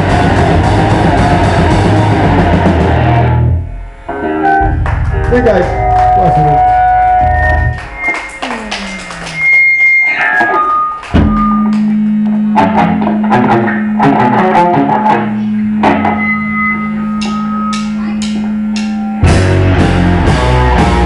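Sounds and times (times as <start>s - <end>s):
bass guitar: 0.0s - 21.0s
loud electric guitar: 0.0s - 21.0s.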